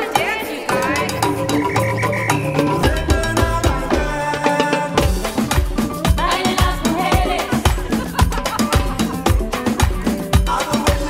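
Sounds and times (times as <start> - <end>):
drums and steel pans music: 0.0 - 11.0
croaking pitched sliding sounds: 0.7 - 5.1.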